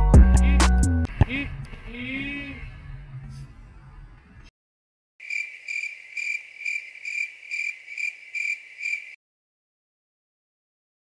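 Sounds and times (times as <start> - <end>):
cricket chirping: 5.2 - 9.2.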